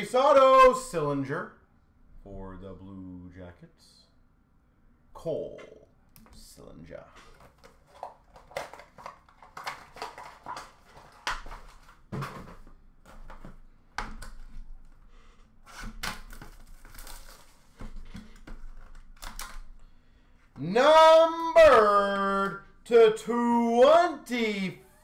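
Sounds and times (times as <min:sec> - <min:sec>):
cards clicking and rustling: 0:07.2 - 0:15.0, 0:15.8 - 0:19.8.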